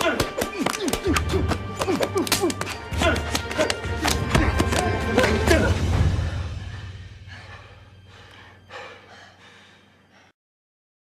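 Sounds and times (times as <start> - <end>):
person breathing and gasping: 5.3 - 10.4.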